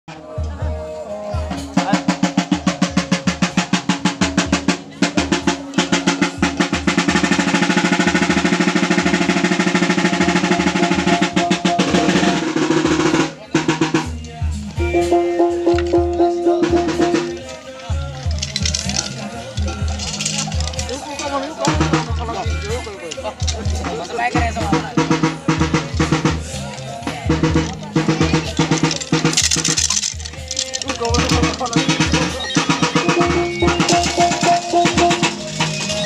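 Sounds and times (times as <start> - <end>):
fast driving drumbeats: 1.4 - 36.0.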